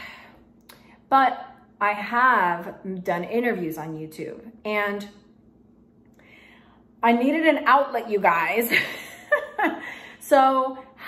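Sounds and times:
woman talking: 1.1s - 5.2s, 7.0s - 9.0s, 10.1s - 11.0s.

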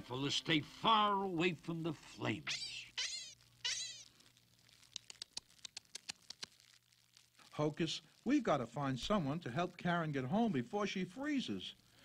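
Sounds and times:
campfire crackling and popping: 1.7s - 9.9s.

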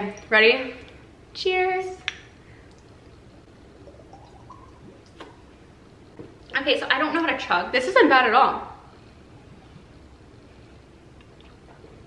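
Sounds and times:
faint hum-like tone: 0.0s - 12.0s.

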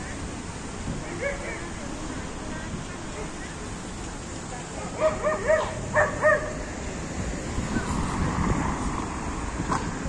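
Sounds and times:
small dog barking: 4.9s - 6.6s.

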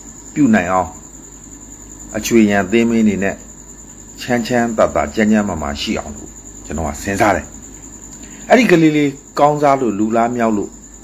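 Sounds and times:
high-pitched whine: 0.0s - 11.0s
man talking: 0.4s - 1.0s, 2.1s - 3.4s, 4.2s - 7.6s, 8.5s - 10.8s.

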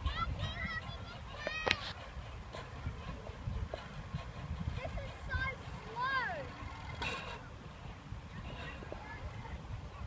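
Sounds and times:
trolley rumbling along steel cable: 0.0s - 10.0s.

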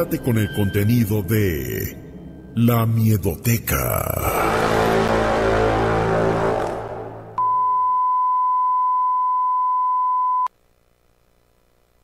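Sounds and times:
outro music: 3.9s - 7.4s.

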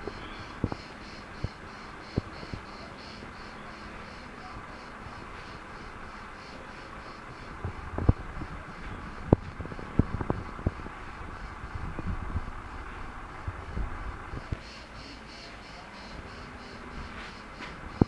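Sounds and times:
crickets chirping: 0.0s - 18.0s.

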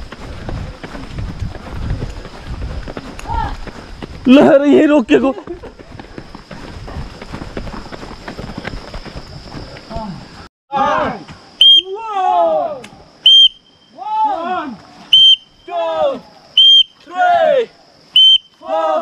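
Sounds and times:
running footsteps on concrete: 0.0s - 10.5s
group shouting: 10.7s - 11.2s, 11.8s - 12.8s, 13.9s - 14.8s, 15.7s - 17.8s, 18.6s - 19.0s
whistle blasts: 11.6s - 12.0s, 13.2s - 14.0s, 15.1s - 15.8s, 16.6s - 17.0s, 18.1s - 18.7s.

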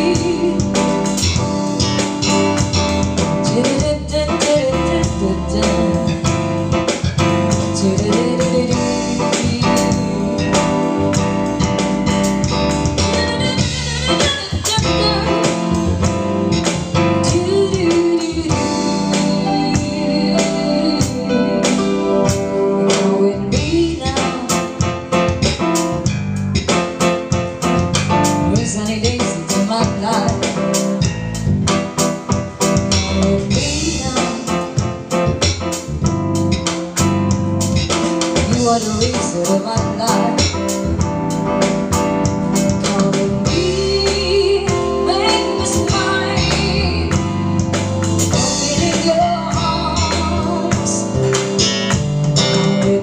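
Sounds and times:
drum kit beat: 0.0s - 53.0s
rock band playing: 0.0s - 53.0s.

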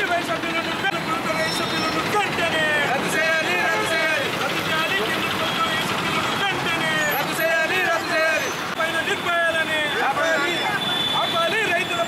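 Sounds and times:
protesters shouting: 0.0s - 12.0s
street traffic: 0.0s - 12.0s.

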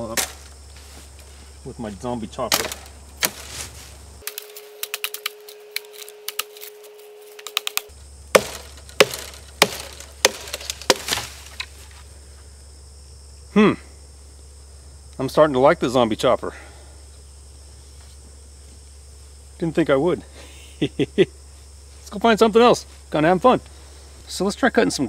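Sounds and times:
blade chopping branches: 0.0s - 1.3s, 2.4s - 12.0s
wood cracking and splintering: 2.5s - 3.6s, 7.4s - 11.7s.

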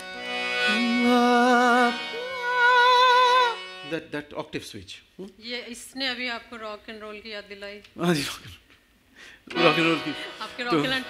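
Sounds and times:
harmonium reed chord: 0.0s - 4.2s, 9.5s - 11.0s
man singing with vibrato: 0.1s - 3.9s.

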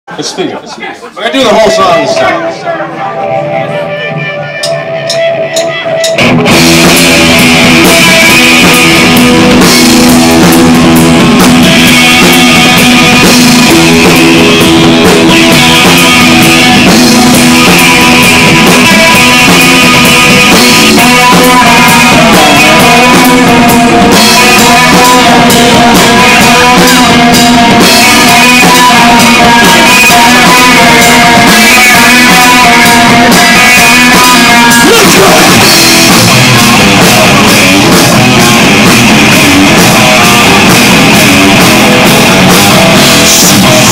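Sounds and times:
live rock band: 0.2s - 43.9s.

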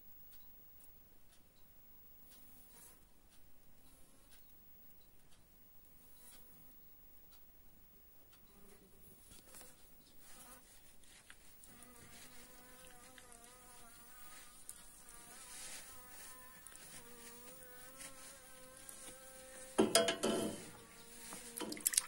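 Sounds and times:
bee buzzing: 11.6s - 22.0s
metal tool scraping wax: 19.7s - 20.8s.

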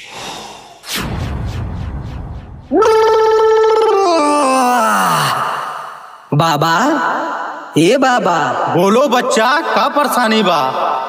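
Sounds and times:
low rumbling whoosh: 0.0s - 2.8s
groan-like vocal wail: 2.7s - 5.7s.

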